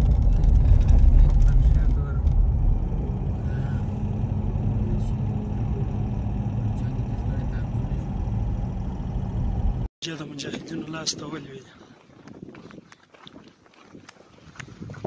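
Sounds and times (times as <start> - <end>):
car engine and road rumble: 0.0 - 9.9.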